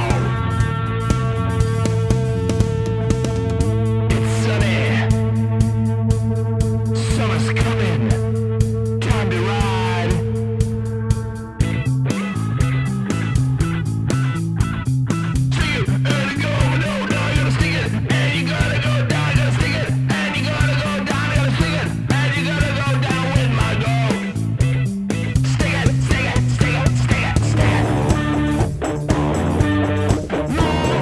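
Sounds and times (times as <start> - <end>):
rock music: 0.0 - 31.0.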